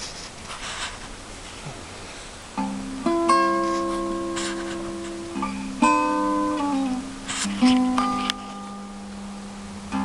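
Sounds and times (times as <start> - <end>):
acoustic guitar fingerpicked blues: 1.5 - 10.0.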